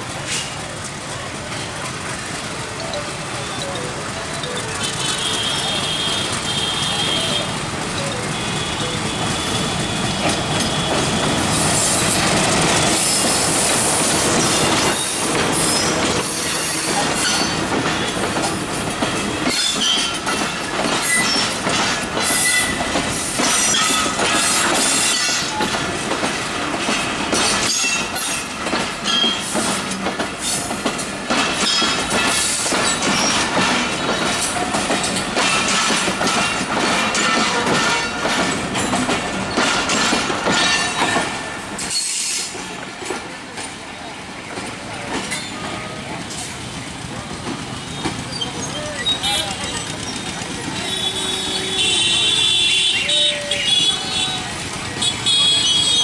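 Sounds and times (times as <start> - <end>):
train wheels clattering over rail joints: 0.0 - 52.1
diesel locomotive passing: 0.0 - 56.0.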